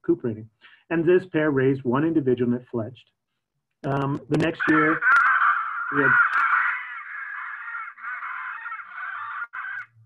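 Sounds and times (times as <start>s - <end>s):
parrot screeching: 4.6s - 10.0s.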